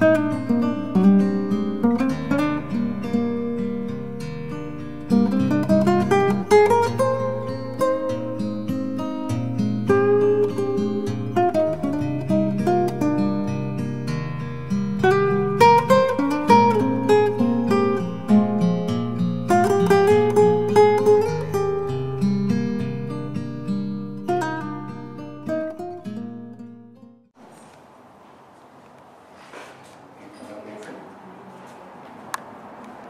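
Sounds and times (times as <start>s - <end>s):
acoustic guitar music: 0.0s - 32.7s.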